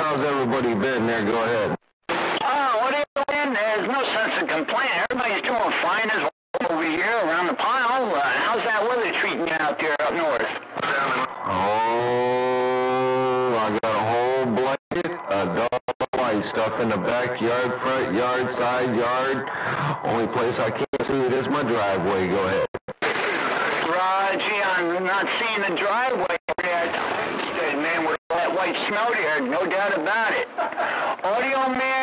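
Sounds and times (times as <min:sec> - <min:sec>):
distorted man's voice over radio: 0:00.0 - 0:30.5, 0:31.2 - 0:32.0.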